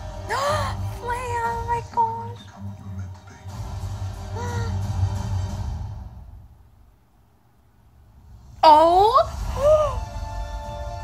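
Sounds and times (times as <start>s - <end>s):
woman whimpering: 0.3s - 0.8s, 4.4s - 4.8s, 8.6s - 10.1s.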